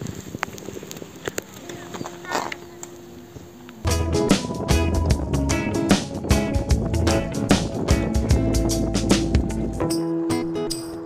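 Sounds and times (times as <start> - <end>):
music with deep bass beat: 3.9 - 10.8.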